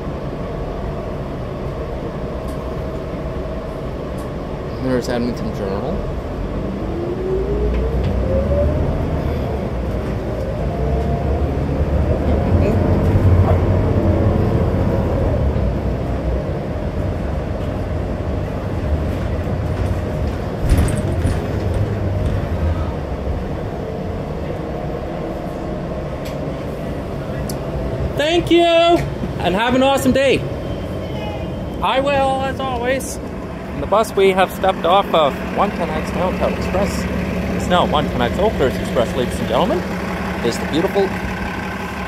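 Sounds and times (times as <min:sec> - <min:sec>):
bus drivetrain whine: 0:00.0 - 0:42.0
heavy engine rumble: 0:00.0 - 0:42.0
clunk: 0:19.7 - 0:22.5.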